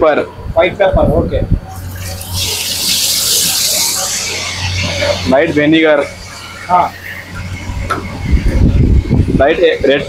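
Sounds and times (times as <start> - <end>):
low hum: 1.5 - 9.8
water pouring into steel pot: 1.8 - 5.0.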